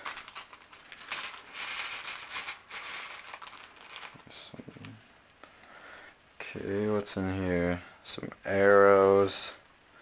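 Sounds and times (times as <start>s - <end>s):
plastic bag crinkling and tearing: 0.0s - 4.4s
small plastic pieces clattering: 0.0s - 4.4s.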